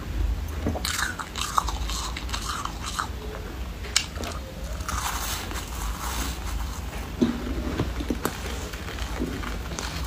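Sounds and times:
crunchy chewing of frozen foam: 0.8 - 3.3, 4.0 - 7.2, 7.8 - 10.0.

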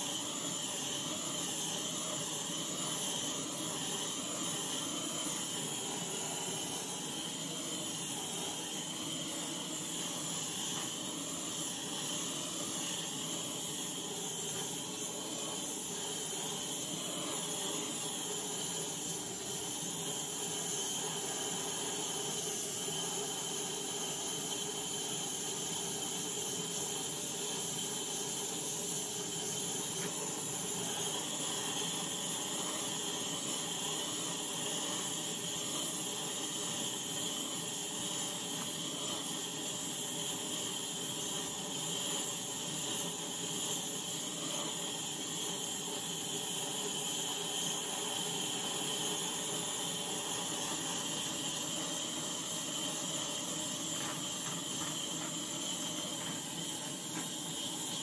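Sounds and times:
gas torch hissing: 0.0 - 58.0.

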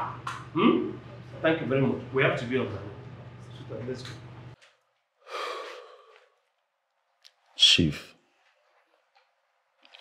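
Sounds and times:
low room hum: 0.0 - 10.0
person sighing: 5.2 - 6.3.

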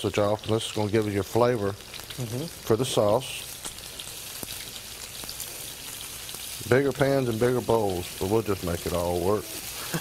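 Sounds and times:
food sizzling in skillets: 0.0 - 10.0.

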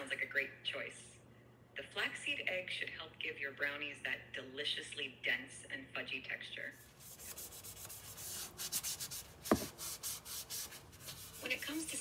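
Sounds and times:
sandpaper rubbing: 6.8 - 12.0.

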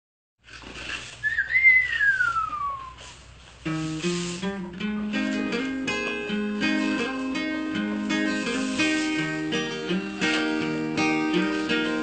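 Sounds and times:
faint background noise: 0.4 - 12.0
whistled note sliding down: 1.2 - 3.0.

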